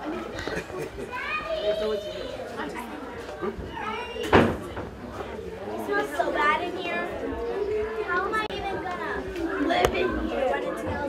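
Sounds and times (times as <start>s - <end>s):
children's voices: 0.0s - 11.0s
people talking indistinctly: 0.0s - 11.0s.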